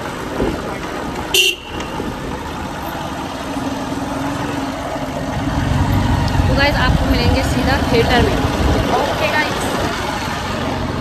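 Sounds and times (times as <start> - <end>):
vehicle road and engine noise: 0.0 - 11.0.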